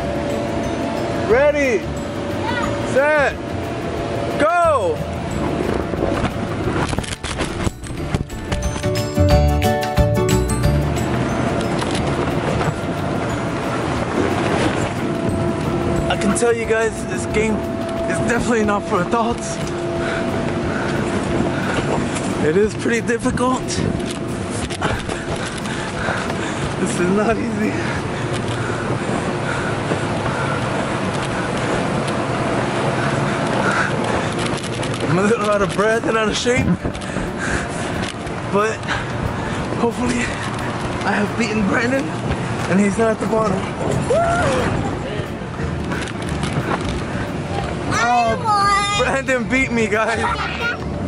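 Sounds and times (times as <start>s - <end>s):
background music: 0.0s - 23.0s
steady hum: 0.0s - 51.0s.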